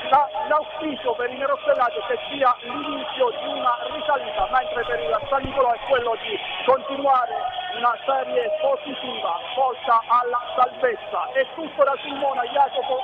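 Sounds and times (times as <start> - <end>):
man speaking over remote link: 0.0 - 13.0.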